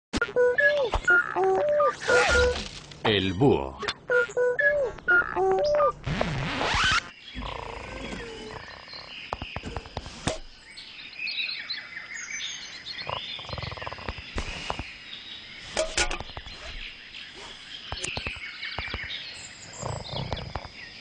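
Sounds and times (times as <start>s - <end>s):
croaking and chirping animal calls: 0.4s - 2.7s, 3.8s - 9.9s, 12.6s - 14.8s, 16.0s - 21.0s.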